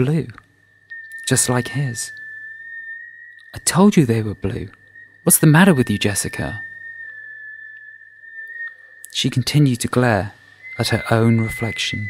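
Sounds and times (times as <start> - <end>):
high-pitched electronic tone: 0.7 - 12.0.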